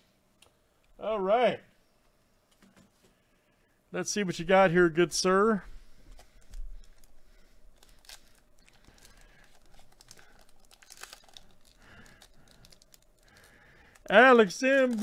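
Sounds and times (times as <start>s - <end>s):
card pack wrapper tearing: 7.8s - 15.0s.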